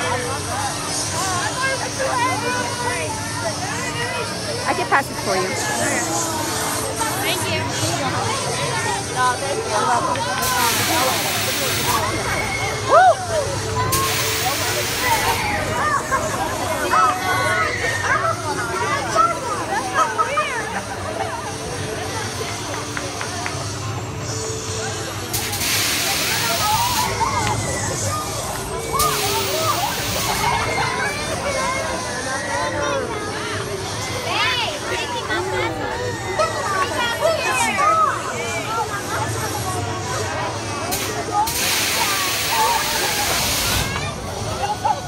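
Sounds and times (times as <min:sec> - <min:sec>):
crowd chatter: 0:00.0 - 0:45.0
pneumatic air hissing: 0:25.3 - 0:27.1, 0:40.9 - 0:43.9.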